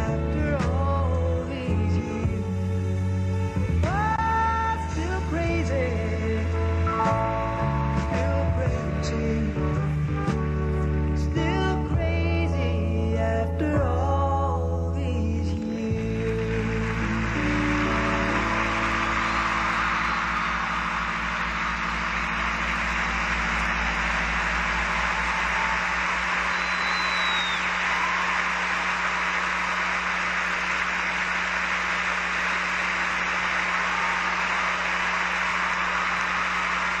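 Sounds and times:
skating music: 0:00.0 - 0:37.0
audience applauding: 0:15.8 - 0:37.0
high whistle: 0:18.4 - 0:29.9.

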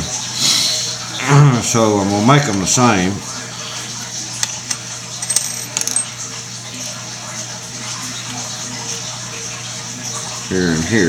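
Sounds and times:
brass fittings clinking: 0:04.4 - 0:06.2.

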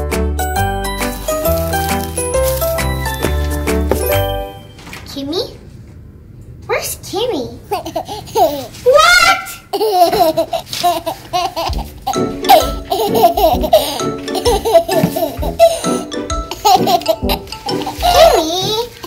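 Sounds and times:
upbeat background music: 0:00.0 - 0:04.7, 0:11.7 - 0:18.7.

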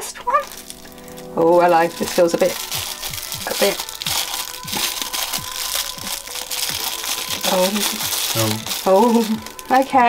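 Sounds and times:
plastic bag crinkling: 0:00.3 - 0:10.0
background music with drum beat: 0:01.7 - 0:10.0.

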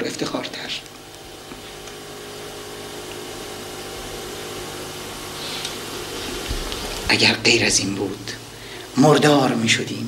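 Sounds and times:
faint low hum: 0:00.0 - 0:10.0
steady hiss: 0:00.0 - 0:10.0.

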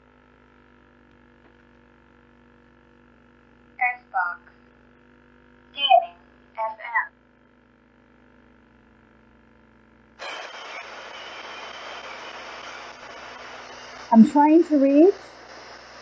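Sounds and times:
radio static hiss: 0:10.2 - 0:16.0.

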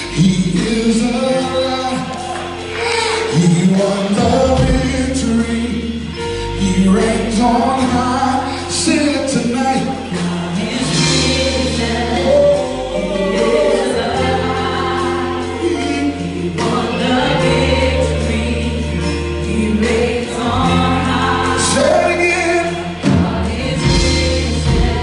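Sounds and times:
guitars: 0:00.0 - 0:25.0
keyboard: 0:00.0 - 0:25.0
singers singing together: 0:00.0 - 0:25.0
deep bass notes: 0:03.3 - 0:25.0.

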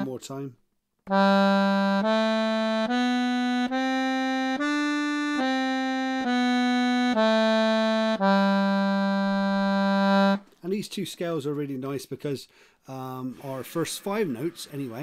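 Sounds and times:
accordion playing a scale: 0:01.1 - 0:10.5.

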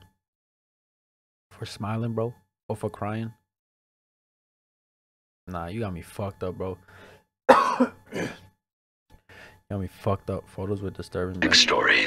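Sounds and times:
man coughing: 0:07.5 - 0:08.4.

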